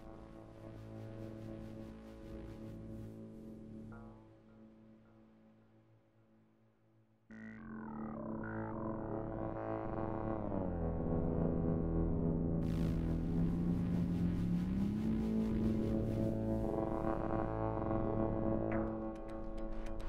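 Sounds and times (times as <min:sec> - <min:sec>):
synthesizer drone music: 0:07.3 - 0:19.4.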